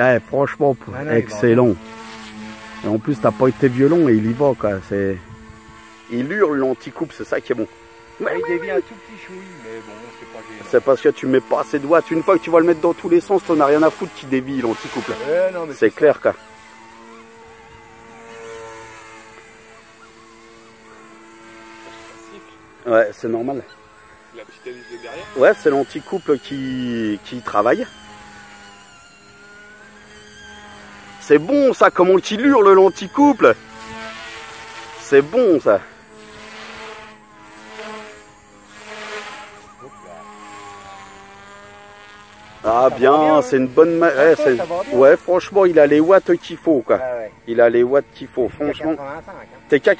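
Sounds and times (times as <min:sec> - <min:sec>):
rc helicopter whine: 0:00.0 - 0:49.9.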